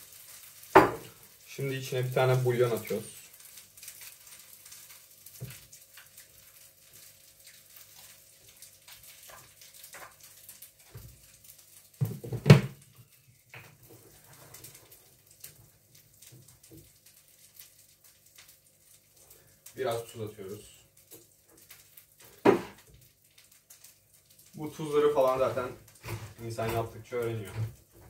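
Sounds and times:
foil wrapper crinkling: 0.0 - 12.1, 12.7 - 28.0
loud knock: 22.5 - 22.8.

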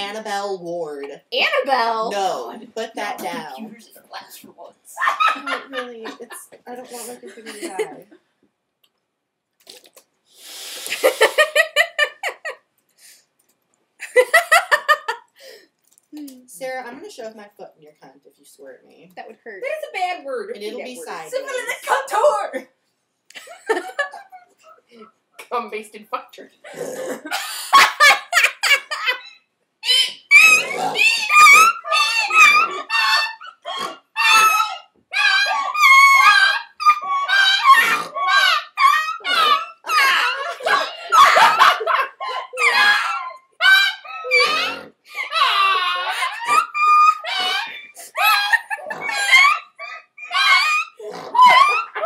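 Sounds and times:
high-pitched rhythmic laughter: 4.9 - 8.1, 11.0 - 12.6, 27.3 - 34.8, 35.4 - 52.0
hiss: 10.4 - 11.4.

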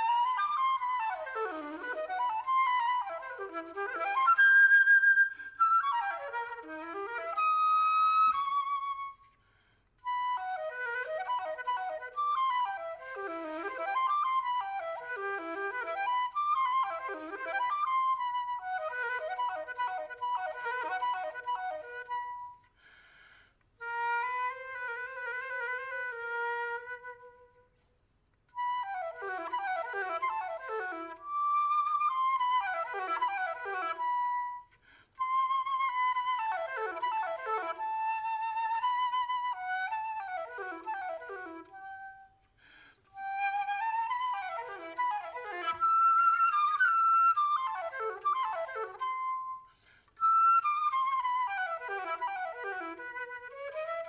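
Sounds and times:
solo flute playing: 0.0 - 23.0, 23.7 - 54.0.

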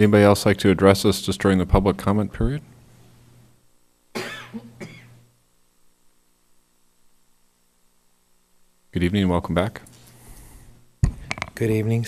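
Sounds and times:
person coughing: 4.2 - 5.2.

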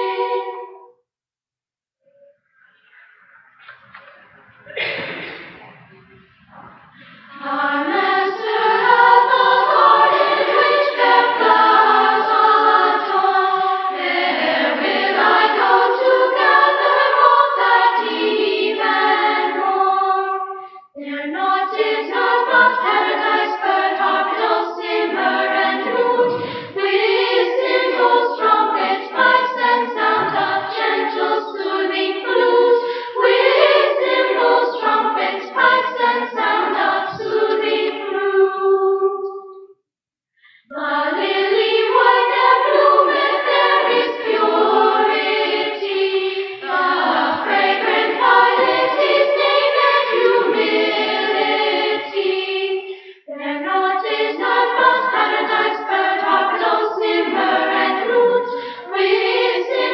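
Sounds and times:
children's choir singing: 0.0 - 0.9, 2.8 - 39.7, 40.5 - 59.9.

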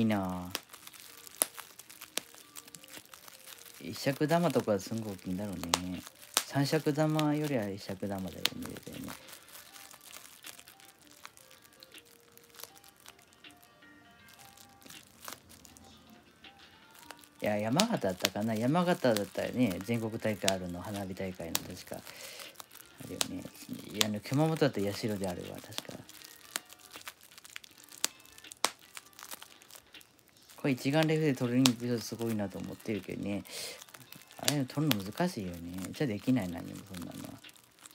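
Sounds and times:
bubble wrap crinkling: 0.0 - 37.9
bubble wrap popping: 0.0 - 37.9
faint slow music: 0.0 - 37.9.

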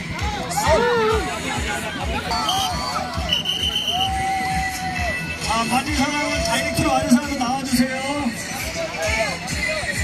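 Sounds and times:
crowd of voices shouting: 0.3 - 5.2.

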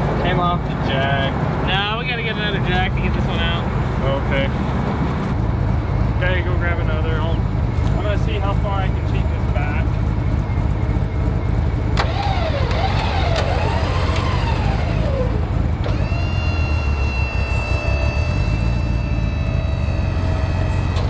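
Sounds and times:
truck engine rumbling: 0.0 - 21.0
mechanical whine: 5.4 - 21.0
high-pitched whining tones: 8.9 - 21.0
thin squeal: 16.0 - 21.0.

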